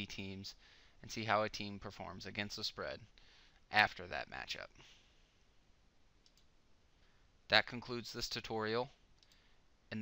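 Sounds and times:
computer mouse click: 6.2s - 6.5s.

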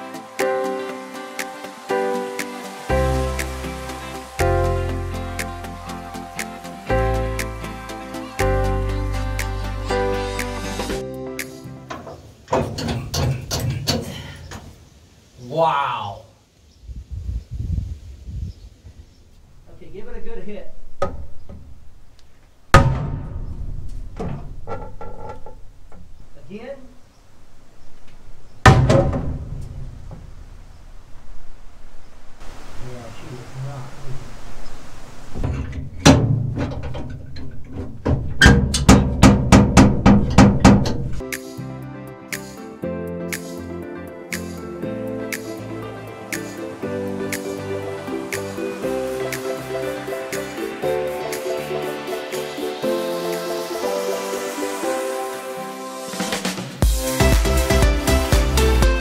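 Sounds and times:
background music: 0.0s - 12.1s, 41.2s - 59.0s
metal knocks and clanks: 11.9s - 14.2s, 22.8s - 26.1s, 28.6s - 30.3s, 35.4s - 41.2s
drum hits: 22.7s - 24.2s, 38.6s - 41.2s, 56.2s - 59.0s.

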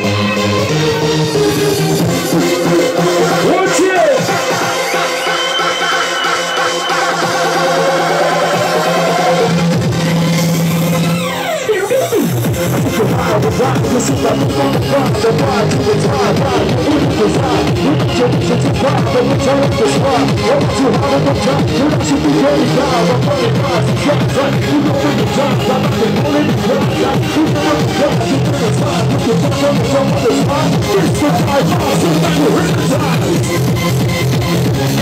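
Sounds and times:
electronic dance music: 0.0s - 35.0s.

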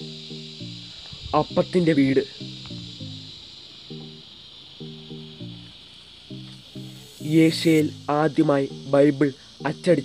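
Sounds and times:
soft instrumental music: 0.0s - 10.0s
steady high hiss: 0.0s - 10.0s
person speaking: 7.2s - 10.0s.

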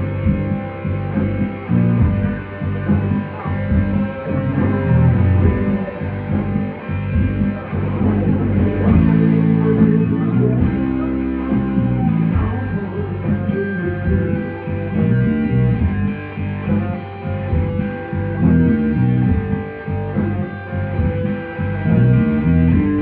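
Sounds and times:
bass guitar: 0.0s - 23.0s
electric guitar: 0.0s - 23.0s
live rock band playing: 0.0s - 23.0s.

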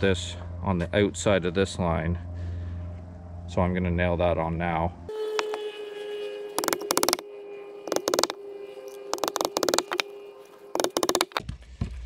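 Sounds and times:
hammer driving nails into wood: 10.8s - 11.4s.

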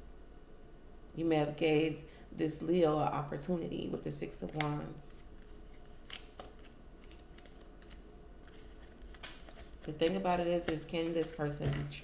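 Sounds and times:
cards handled on a table: 4.5s - 11.9s.

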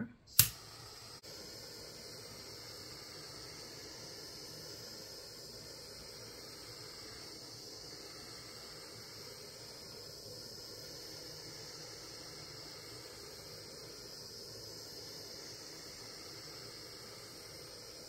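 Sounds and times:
micro torch hissing: 0.3s - 18.0s.

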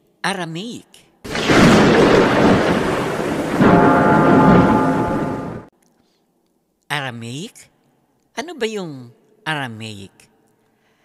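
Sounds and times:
thunder rumble: 1.3s - 5.7s.

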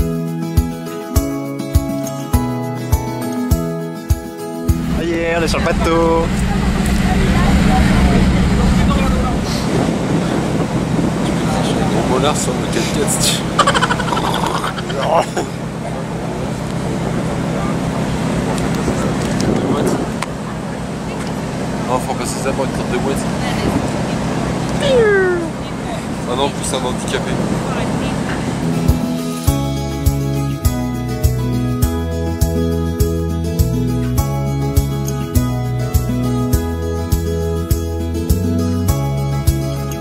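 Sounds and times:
ferry engines droning: 4.7s - 30.4s
wind noise on microphone: 4.8s - 12.2s, 18.7s - 20.4s
faint voices: 4.9s - 28.6s
drawn-out vocal cry: 13.6s - 15.3s, 24.8s - 25.6s.

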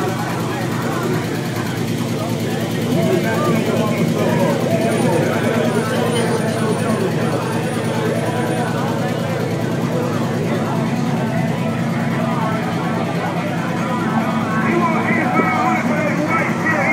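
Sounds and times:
people talking: 0.0s - 16.9s
pickup engine idling with lope: 0.0s - 16.9s.

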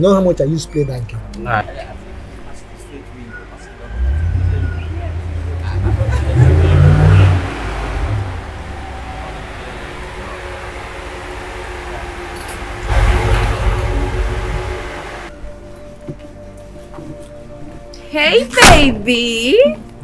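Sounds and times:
vehicle engine rumbling: 3.1s - 15.6s.

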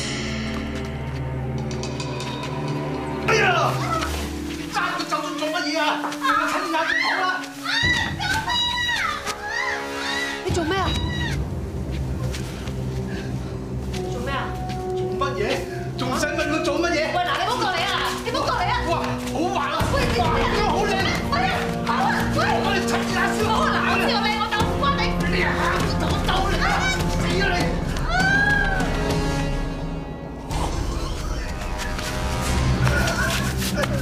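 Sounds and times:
background music sustained chord: 0.0s - 7.7s, 11.5s - 28.1s
woman screaming and crying: 6.2s - 11.5s, 28.0s - 29.0s.

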